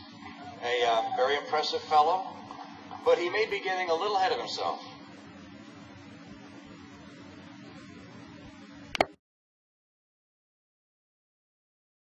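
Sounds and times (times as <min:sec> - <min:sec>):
faint electrical hum: 0:00.0 - 0:09.2.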